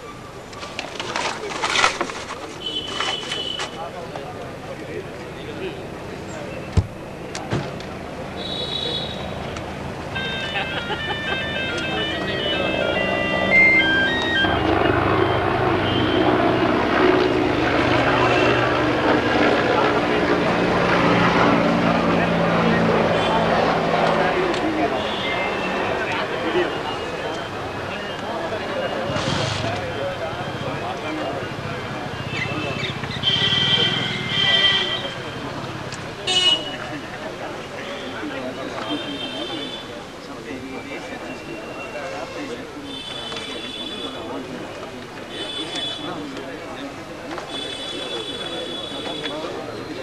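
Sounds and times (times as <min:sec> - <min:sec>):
crowd talking: 0:00.0 - 0:50.0
electronic beeping melody: 0:10.2 - 0:15.5.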